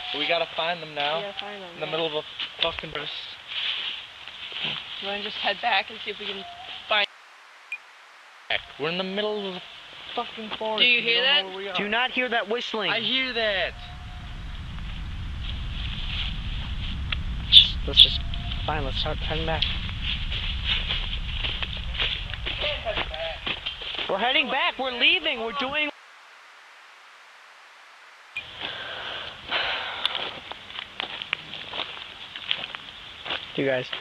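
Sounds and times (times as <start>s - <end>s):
steady hiss: 0.0s - 34.0s
footsteps in dry leaves: 1.2s - 6.9s, 19.7s - 24.2s, 30.0s - 34.0s
wind rumble on microphone: 13.0s - 24.2s.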